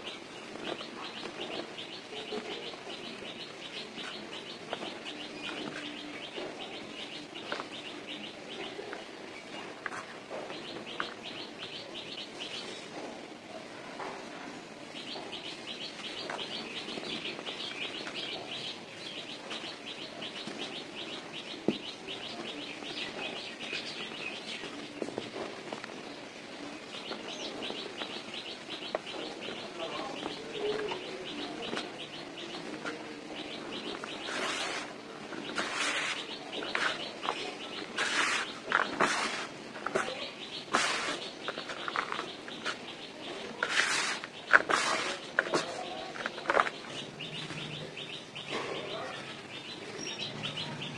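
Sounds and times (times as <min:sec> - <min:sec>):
bird chirping: 0:00.0 - 0:13.2, 0:14.3 - 0:50.9
hands digging through cement powder: 0:34.0 - 0:42.8, 0:43.6 - 0:46.7.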